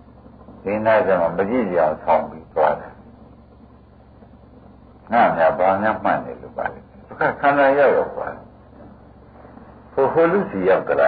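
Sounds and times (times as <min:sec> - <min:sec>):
low hiss: 0:00.0 - 0:11.0.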